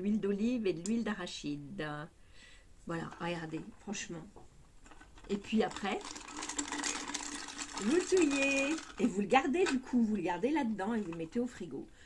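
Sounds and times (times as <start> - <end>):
plastic whisk whirring rattle: 4.8 - 11.8.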